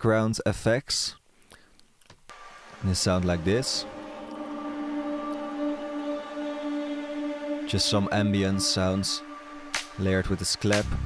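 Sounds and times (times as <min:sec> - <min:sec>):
faint hiss: 0:00.9 - 0:11.0
held drone of steady tones: 0:02.3 - 0:10.8.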